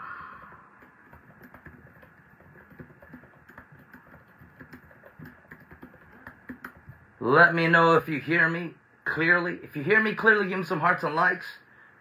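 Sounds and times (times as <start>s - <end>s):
low hiss of room noise: 0.0s - 12.0s.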